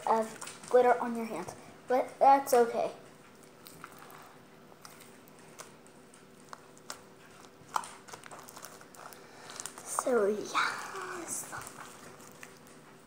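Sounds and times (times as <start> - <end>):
faint room hum: 0.0 - 13.0
slime squelching: 3.2 - 13.0.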